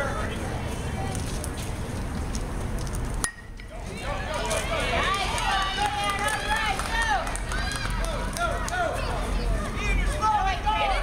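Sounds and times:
crowd shouting and cheering: 0:03.6 - 0:11.0.

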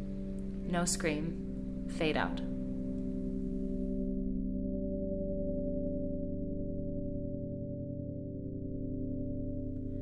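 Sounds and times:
low ambient drone: 0:00.0 - 0:10.0.

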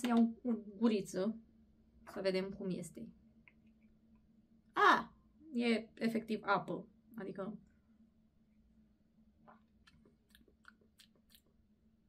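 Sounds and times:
faint steady hum: 0:00.0 - 0:12.0
lip smacks and tongue clicks: 0:09.5 - 0:11.6.

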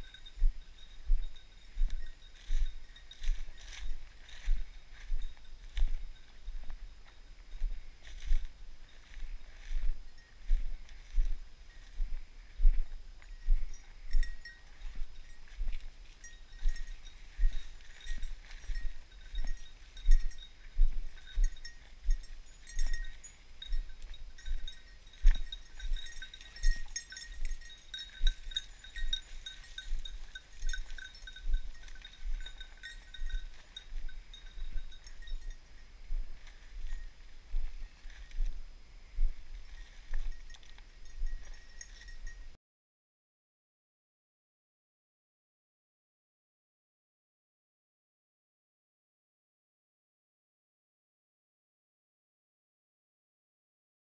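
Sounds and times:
faint high collar tones: 0:00.0 - 0:42.6
footsteps crunching dry leaves: 0:01.2 - 0:06.9, 0:07.5 - 0:12.9.

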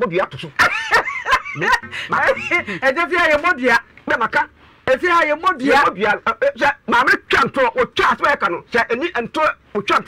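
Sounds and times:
laughter: 0:00.5 - 0:02.8.

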